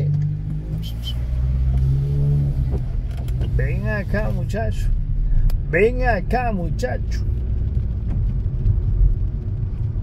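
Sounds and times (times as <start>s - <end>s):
car engine accelerating: 0.0s - 10.0s.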